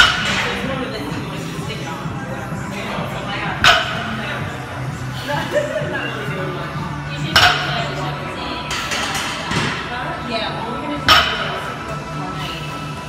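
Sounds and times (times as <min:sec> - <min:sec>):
gym background music: 0:00.0 - 0:13.0.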